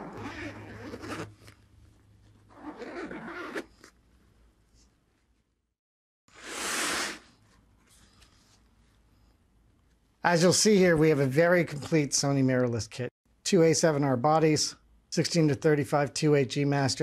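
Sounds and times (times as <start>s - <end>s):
zipper unzipping: 0.0s - 1.6s, 2.5s - 4.0s, 6.3s - 7.3s.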